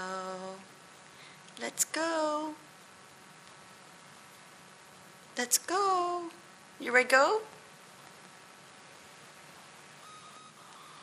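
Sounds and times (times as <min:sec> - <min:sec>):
faint room hiss: 0:00.0 - 0:11.0
faint high tone: 0:10.0 - 0:11.0.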